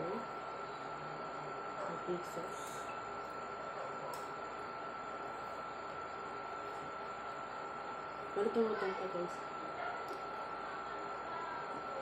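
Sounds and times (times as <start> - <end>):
thin constant whine: 0.0 - 12.0.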